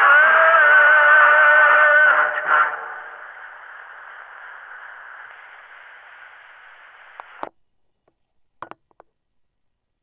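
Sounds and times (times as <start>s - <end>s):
phonograph surface hiss: 2.4s - 9.6s.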